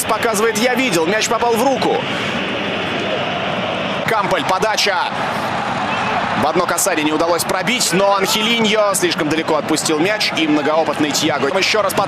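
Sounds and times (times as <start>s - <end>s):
stadium crowd ambience: 0.0s - 12.0s.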